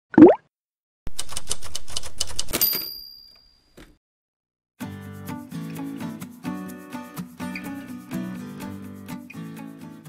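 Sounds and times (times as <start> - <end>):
typewriter keys clacking: 1.1 - 3.0.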